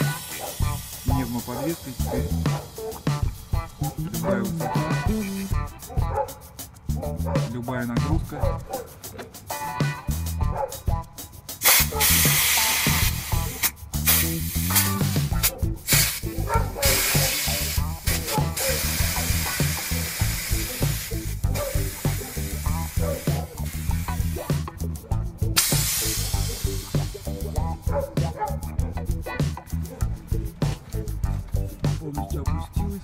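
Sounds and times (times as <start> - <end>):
compressed air hissing: 0.0 - 6.8, 11.2 - 31.8
background music with steady beat: 0.0 - 33.0.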